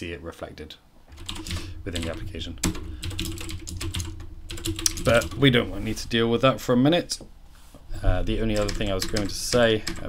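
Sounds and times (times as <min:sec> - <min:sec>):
low steady hum: 0:00.0 - 0:10.0
computer keyboard typing: 0:01.1 - 0:05.5, 0:08.5 - 0:10.0.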